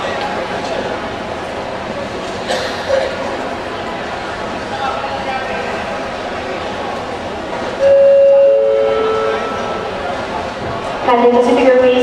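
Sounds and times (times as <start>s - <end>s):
hall noise: 0.0s - 12.0s
two-note public address chime: 7.8s - 10.1s.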